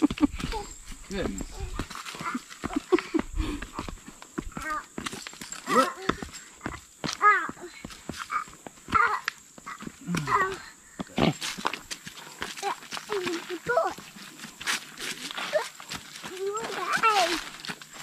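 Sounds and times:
footsteps on wooden steps and dirt: 0.0s - 18.0s
child's high-pitched vocal sounds: 0.4s - 0.8s, 3.8s - 5.0s, 5.6s - 10.8s, 12.5s - 14.0s, 15.2s - 17.5s.

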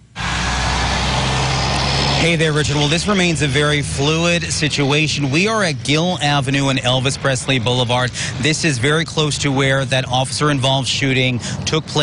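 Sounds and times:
idling vehicle engines hum: 0.0s - 12.0s.

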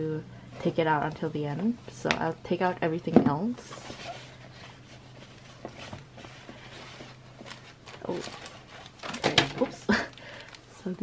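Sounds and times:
plastic packaging crinkling: 3.7s - 11.0s.

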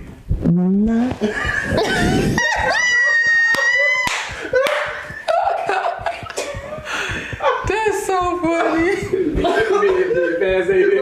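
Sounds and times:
high-pitched wail: 2.2s - 5.6s.

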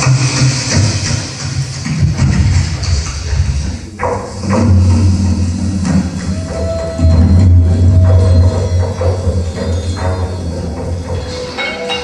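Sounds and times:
electronic noise music: 0.0s - 12.0s.

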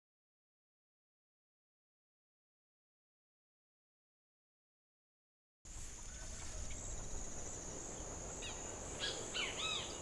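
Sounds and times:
birds chirping: 5.8s - 10.0s
short curved bird calls: 5.8s - 10.0s.

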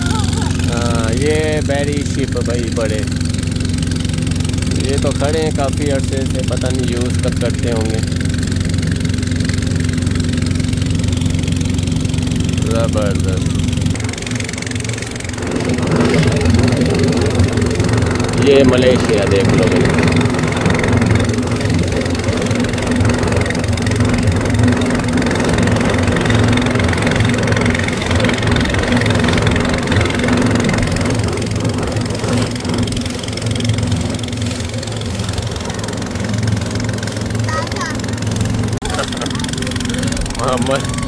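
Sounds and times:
boat engine droning: 0.0s - 41.0s
water rushing by hull: 0.0s - 41.0s.

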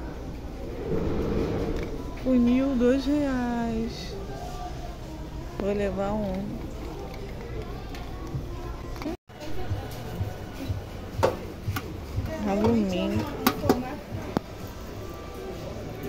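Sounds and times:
background music: 0.4s - 16.0s.

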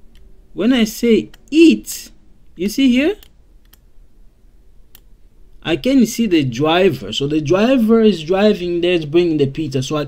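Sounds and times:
man speaking: 0.6s - 3.3s, 5.6s - 10.0s
computer mouse clicks: 3.2s - 3.9s.

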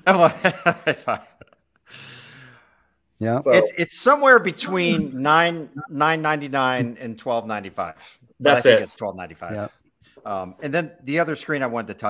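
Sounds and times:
breathy exhale: 1.9s - 3.0s
man speaking: 3.2s - 12.0s.

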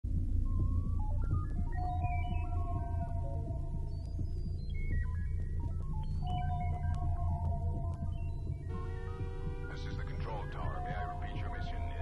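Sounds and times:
throbbing low synth pulse: 0.1s - 12.0s
synthesizer melody of short notes: 8.7s - 12.0s.

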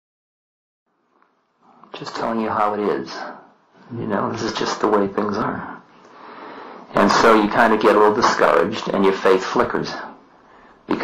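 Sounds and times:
faint recording hiss: 0.9s - 11.0s
man talking: 1.7s - 5.9s, 6.9s - 10.2s.

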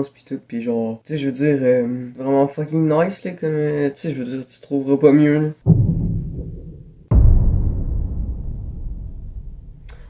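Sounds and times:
deep drum hit booming: 5.7s - 10.0s.

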